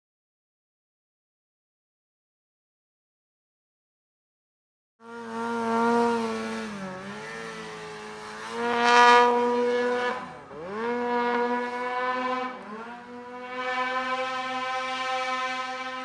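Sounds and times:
snowmobile engine revving: 5.0 - 16.0.

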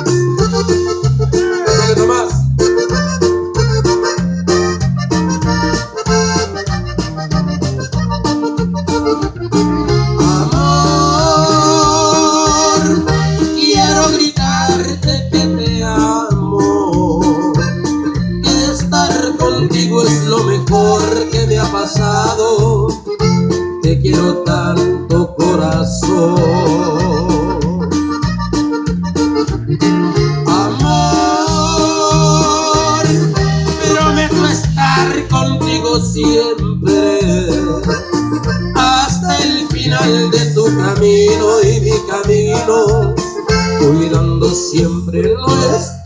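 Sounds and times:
drum kit steady beat: 0.0 - 45.8
acoustic guitar: 0.0 - 46.0
button accordion melody: 0.0 - 46.0
electric bass: 0.0 - 46.0.

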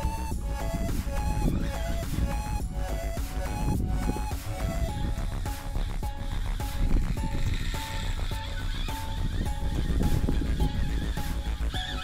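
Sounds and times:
background music with steady beat: 0.0 - 12.0
fishing reel drag screaming: 5.4 - 12.0.

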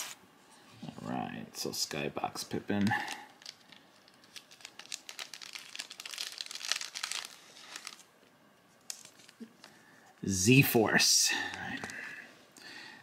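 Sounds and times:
plastic binder pages crinkling: 2.7 - 8.1, 8.8 - 9.8.

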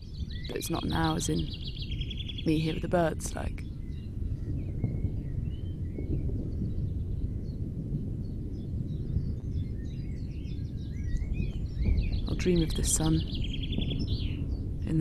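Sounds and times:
low microphone rumble: 0.0 - 15.0
small birds chirping: 0.0 - 15.0.

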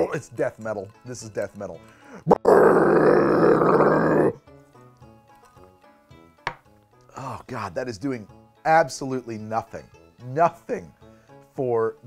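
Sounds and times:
faint background music: 0.0 - 12.0
man growling: 2.2 - 4.4.

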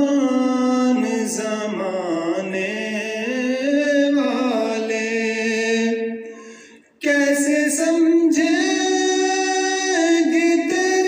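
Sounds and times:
man singing unaccompanied: 0.0 - 6.3, 7.0 - 11.0.

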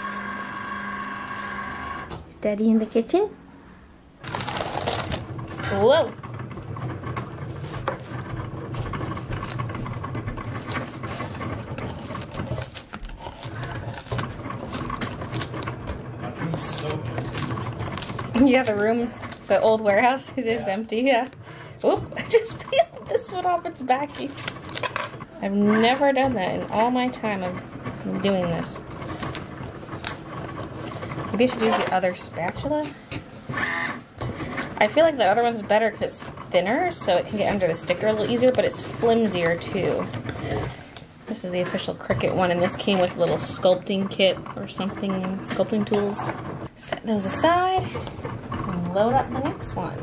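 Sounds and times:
metal spatula scraping plastic mat: 4.2 - 50.0
stickers peeling: 10.5 - 20.1.

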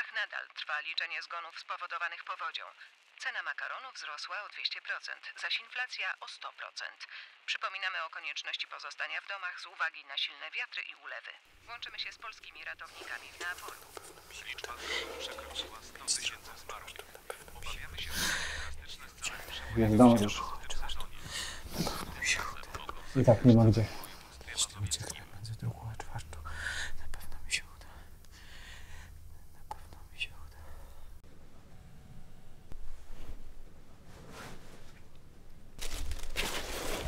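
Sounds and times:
low steady hum: 11.5 - 37.0
man whispering: 12.8 - 28.3, 29.0 - 31.2.

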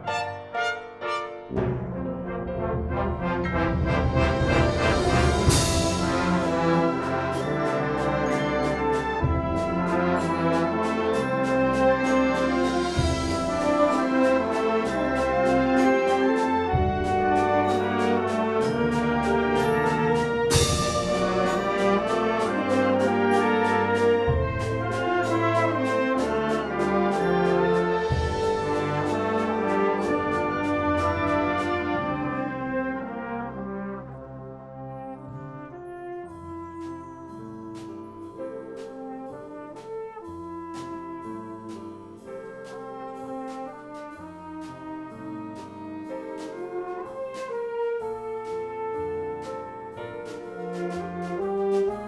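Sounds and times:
wind band playing: 0.0 - 52.0
percussion strokes: 3.0 - 32.0.

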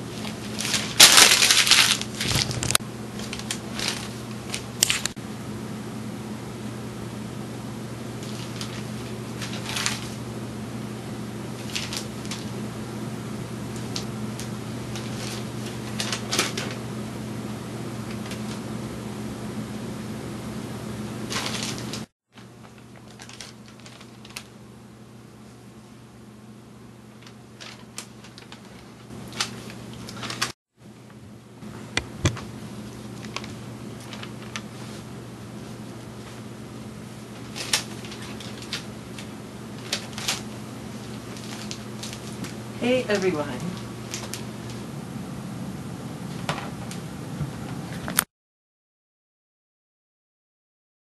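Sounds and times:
crackling rustle on microphone: 0.0 - 5.2, 21.3 - 24.5, 32.8 - 36.5, 37.2 - 44.9
low electrical hum: 0.0 - 48.3.

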